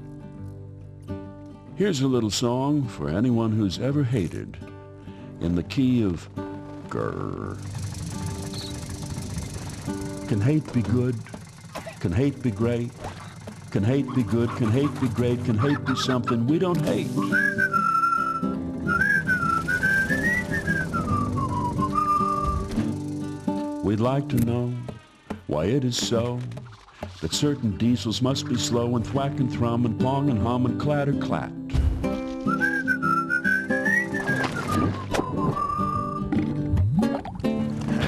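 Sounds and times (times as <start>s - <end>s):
backing music: 5.5s - 13.0s, 13.7s - 30.4s
person whistling a tune: 17.0s - 22.9s, 32.4s - 36.3s.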